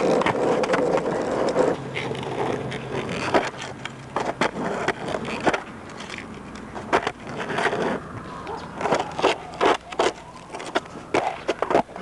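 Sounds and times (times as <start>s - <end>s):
skateboard clacking on ground: 0.0s - 12.0s
skateboard wheels rolling: 0.0s - 12.0s.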